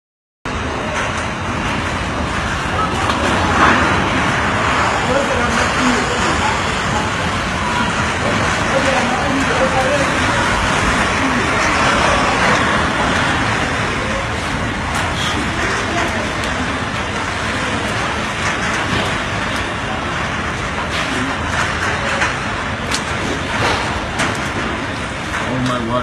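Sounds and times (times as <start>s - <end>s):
strong wind roaring: 0.5s - 26.0s.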